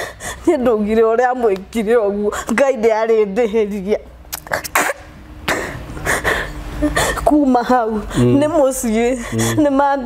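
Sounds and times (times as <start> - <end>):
woman sniffling and sobbing: 0.0 - 0.5, 4.6 - 7.3, 9.1 - 9.7.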